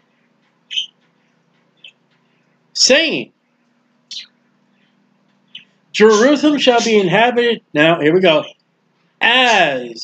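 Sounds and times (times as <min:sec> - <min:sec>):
faint steady hum: 0:00.0 - 0:10.0
small bird chirping: 0:00.5 - 0:02.4, 0:04.1 - 0:07.1.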